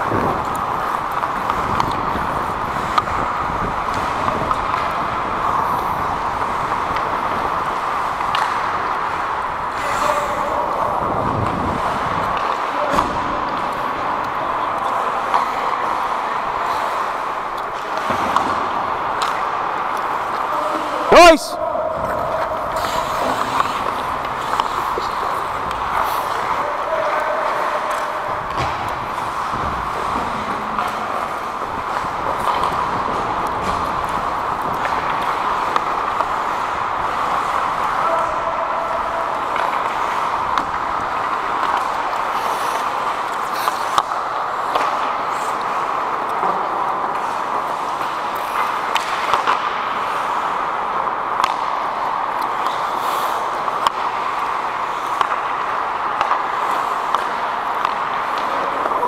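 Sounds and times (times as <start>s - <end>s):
hockey sticks and puck clicks: 0.0s - 59.0s
skating on ice: 0.0s - 59.0s.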